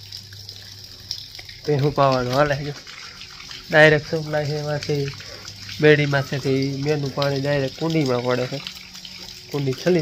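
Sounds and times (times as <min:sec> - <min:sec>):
man talking: 0:01.6 - 0:02.8, 0:03.7 - 0:05.2, 0:05.8 - 0:08.7, 0:09.5 - 0:10.0.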